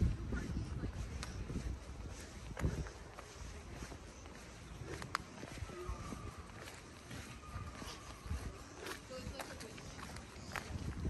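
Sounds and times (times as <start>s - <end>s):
footsteps on grass: 0.0s - 11.0s.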